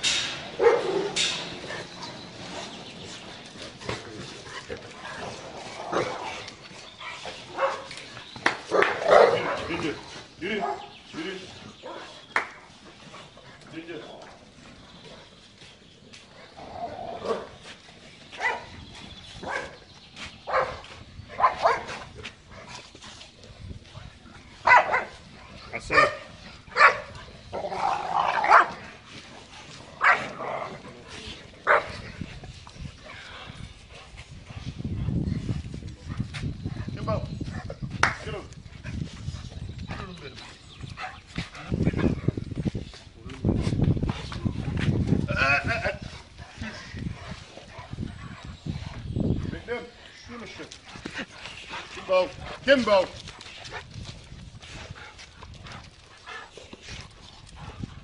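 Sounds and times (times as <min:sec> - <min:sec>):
dogs barking: 0:00.5 - 0:02.2, 0:07.0 - 0:11.0, 0:11.8 - 0:12.5, 0:18.3 - 0:18.8, 0:19.4 - 0:22.1, 0:24.6 - 0:28.9, 0:30.0 - 0:30.8, 0:31.6 - 0:32.0.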